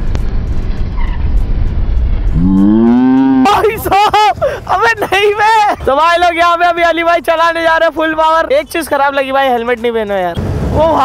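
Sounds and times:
motorcycle wind and riding noise: 0:00.0 - 0:02.7
drawn-out rising call: 0:02.4 - 0:03.5.

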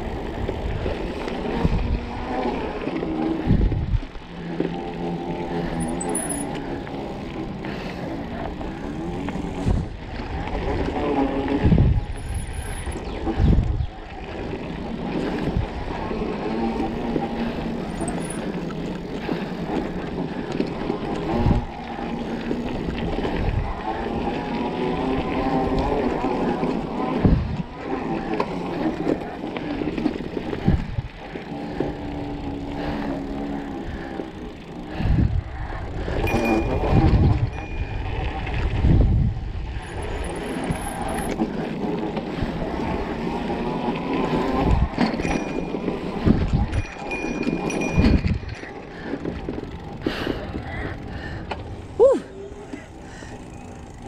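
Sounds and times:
bike tyres rumbling on dirt: 0:00.0 - 0:54.0.

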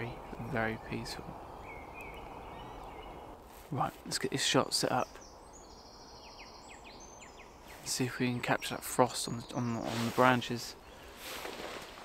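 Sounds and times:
man speaking: 0:00.0 - 0:01.4, 0:03.7 - 0:05.2, 0:07.8 - 0:10.8
open air hiss: 0:00.6 - 0:12.0.

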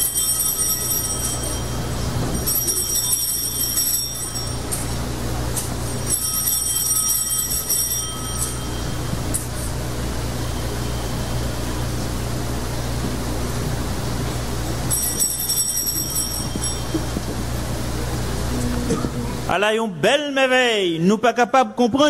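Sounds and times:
bright high bells ringing: 0:00.0 - 0:12.4, 0:14.8 - 0:19.1
steady low hum: 0:00.0 - 0:21.0.

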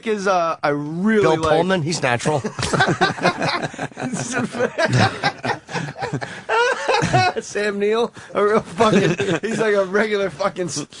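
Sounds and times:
men talking: 0:00.0 - 0:11.0
men chuckling: 0:02.5 - 0:07.4, 0:08.7 - 0:09.8.

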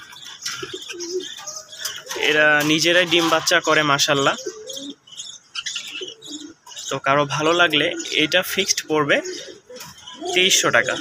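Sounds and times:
pigeon cooing: 0:00.0 - 0:11.0.

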